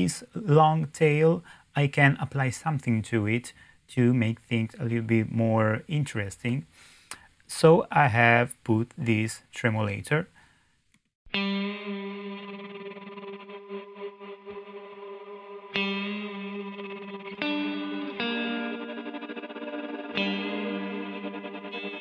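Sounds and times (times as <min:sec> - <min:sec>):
electric guitar with tremolo reverb: 0:11.3 - 0:22.0.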